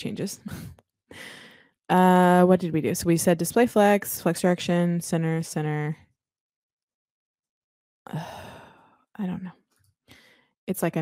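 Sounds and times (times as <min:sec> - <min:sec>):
woman sighing: 0:08.1 - 0:08.8.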